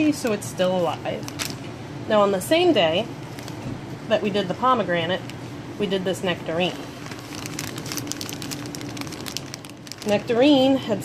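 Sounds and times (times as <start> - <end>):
plastic bag crinkling: 1.2 - 1.7, 3.3 - 3.6, 6.9 - 10.7.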